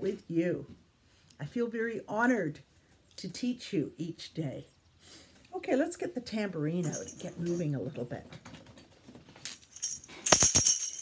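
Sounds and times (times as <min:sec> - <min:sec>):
tambourine shaken and struck: 0:09.7 - 0:11.0.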